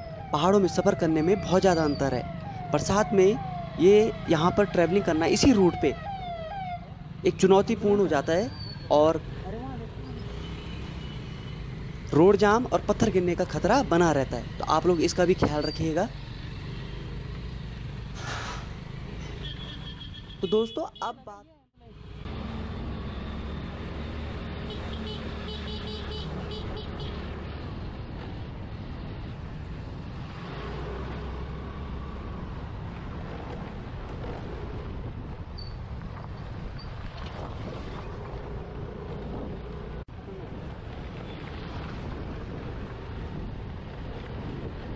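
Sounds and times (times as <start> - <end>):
vehicle on rough dirt road: 0.0 - 44.9
wind rumbling on microphone: 32.7 - 44.9.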